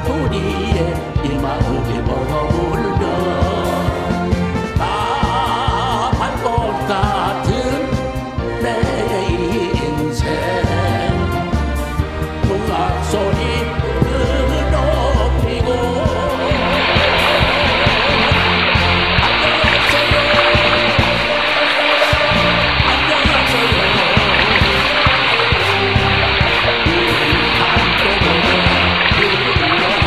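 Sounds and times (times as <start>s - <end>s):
background music: 0.0s - 30.0s
running water: 15.6s - 30.0s.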